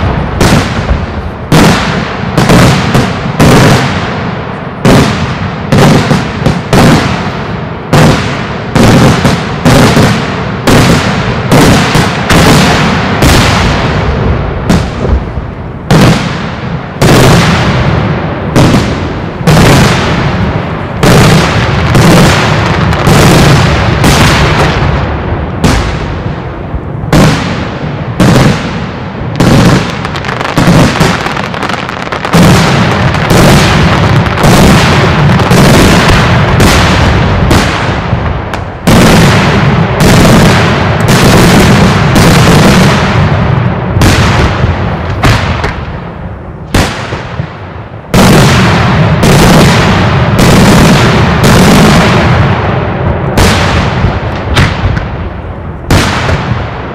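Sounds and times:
fireworks sharp bangs: 0.0s - 56.9s
rumble of fireworks explosions: 0.0s - 56.9s.

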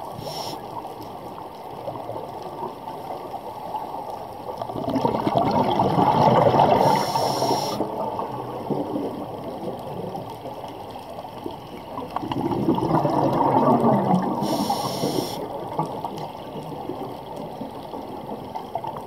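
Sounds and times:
regulator inhale hiss: 0.0s - 0.8s, 6.8s - 7.9s, 14.4s - 15.5s
exhaled bubbles rushing underwater: 1.6s - 19.0s.

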